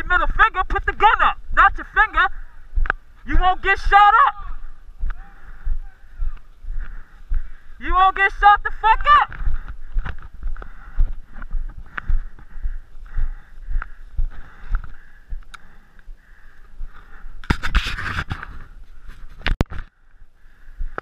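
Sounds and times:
footsteps in dry grass: 4.5 - 7.9, 8.5 - 21.0
rustling and scraping in brush: 17.4 - 19.6.

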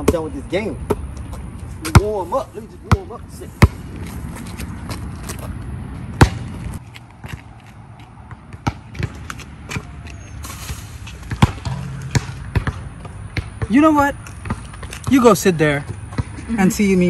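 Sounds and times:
basketball bouncing on concrete: 0.0 - 2.2, 2.8 - 4.1, 6.0 - 10.1, 11.1 - 16.4.

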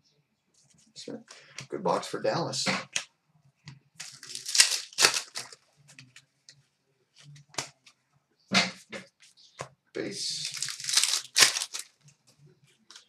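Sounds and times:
cards ticking as shuffled: 4.0 - 6.2, 10.3 - 12.0.

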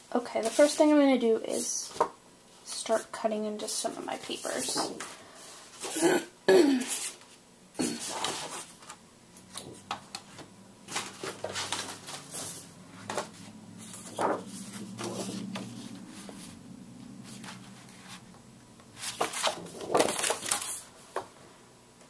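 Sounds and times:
faint low hum: 0.0 - 22.0
paper rustling and flapping: 8.0 - 16.5, 19.0 - 21.3.

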